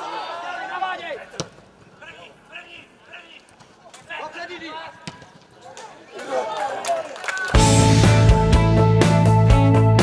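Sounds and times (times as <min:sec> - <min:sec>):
players shouting: 0:00.0 - 0:07.8
ball being kicked: 0:05.0 - 0:05.4.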